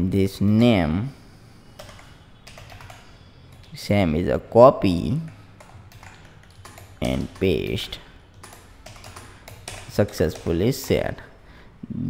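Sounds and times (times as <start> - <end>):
computer keyboard keystrokes: 1.8 - 3.8, 5.2 - 11.3.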